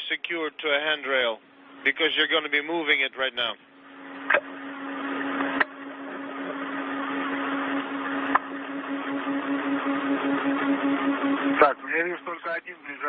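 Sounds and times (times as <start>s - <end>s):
steady low hum: 0.0s - 13.0s
radio channel hiss: 11.5s - 13.0s.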